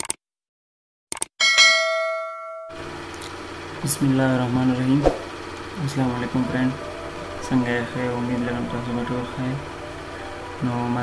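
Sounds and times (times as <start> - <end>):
bright bell-like ding: 1.4 - 2.8
steady low hum: 2.7 - 11.0.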